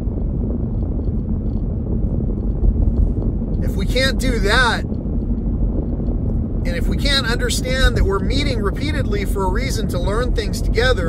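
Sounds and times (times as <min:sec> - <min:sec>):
vehicle cabin road rumble: 0:00.0 - 0:11.0.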